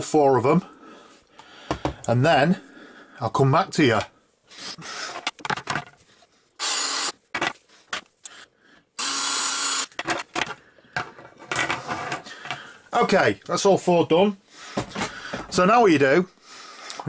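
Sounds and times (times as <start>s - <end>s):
power drill running: 6.6s - 7.2s, 9.0s - 10.0s.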